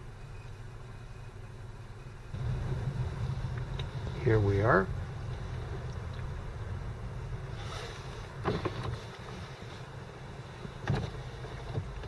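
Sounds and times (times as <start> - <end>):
car idling from inside cabin: 2.3 - 12.0.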